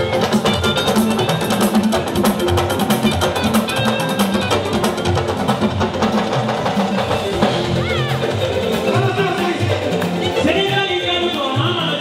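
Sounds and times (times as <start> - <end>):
live band music through speakers: 0.0 - 12.0.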